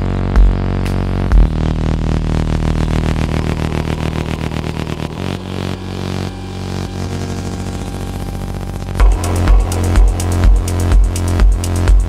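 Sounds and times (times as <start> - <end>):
pulsing synth pattern: 0.0 - 12.0
sustained synth bass: 0.0 - 12.0.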